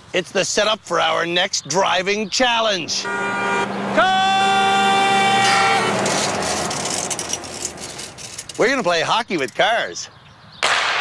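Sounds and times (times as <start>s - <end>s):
car driving past: 2.8s - 8.4s.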